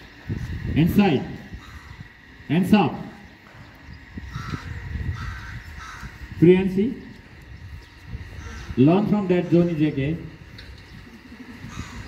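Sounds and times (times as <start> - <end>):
crow cawing: 1.5 - 2.0, 4.3 - 6.3, 8.4 - 8.8, 11.6 - 12.0.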